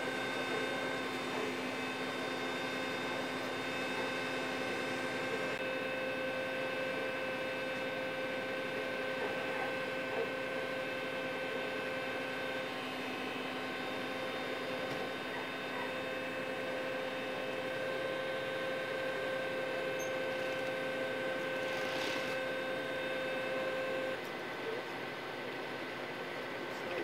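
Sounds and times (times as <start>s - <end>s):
machine hum: 0.0s - 24.3s
whining tones: 0.0s - 24.3s.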